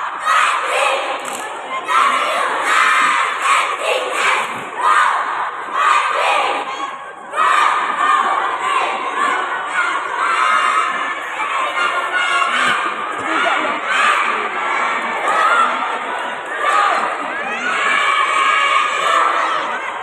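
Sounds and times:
cheerleaders shouting a cheer: 0:00.0 - 0:20.0.

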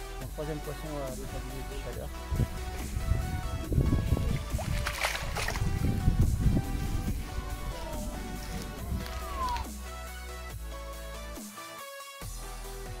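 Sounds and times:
background music: 0:00.0 - 0:13.0
fish splashing in shallow water: 0:03.9 - 0:06.1.

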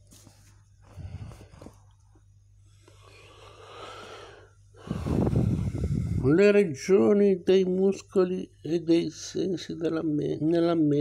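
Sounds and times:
person breathing in: 0:02.8 - 0:06.2.

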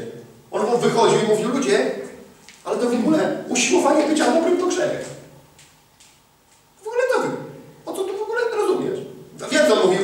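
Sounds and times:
man preaching: 0:00.0 - 0:05.3, 0:06.8 - 0:10.0.

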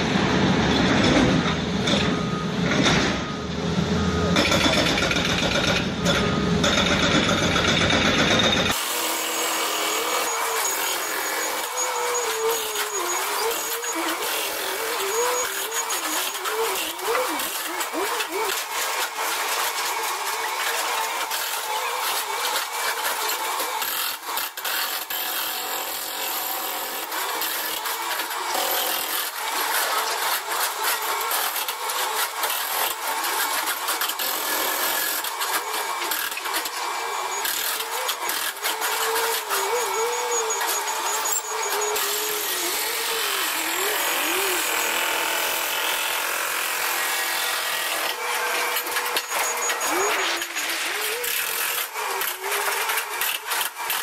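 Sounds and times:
chain saw cutting stone: 0:04.4 - 0:54.0
high-pitched wavering voices: 0:39.4 - 0:44.8.

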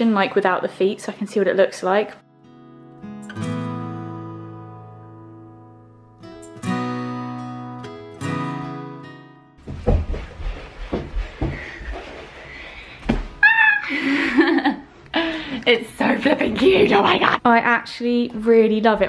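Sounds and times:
strummed acoustic guitar music: 0:02.2 - 0:09.7
thumps and rustling on carpet: 0:09.6 - 0:12.2.

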